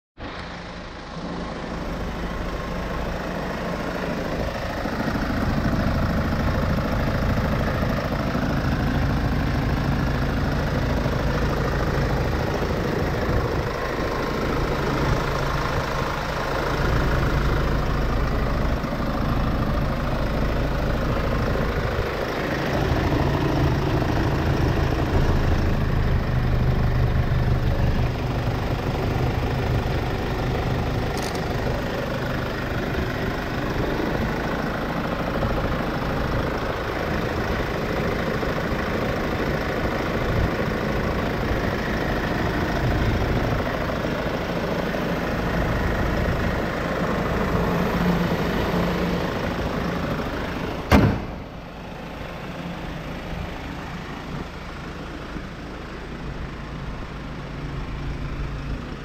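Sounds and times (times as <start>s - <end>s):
diesel engine idling: 0.2s - 59.0s.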